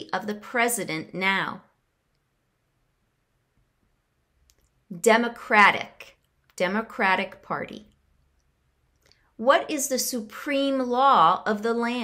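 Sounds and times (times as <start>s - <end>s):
woman speaking: 0.0s - 1.8s, 4.9s - 8.0s, 9.4s - 12.0s.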